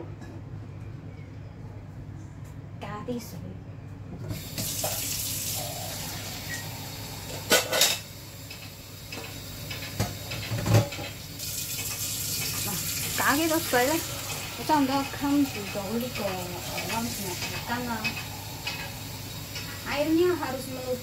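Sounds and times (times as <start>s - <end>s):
tap water filling container: 4.3s - 6.7s.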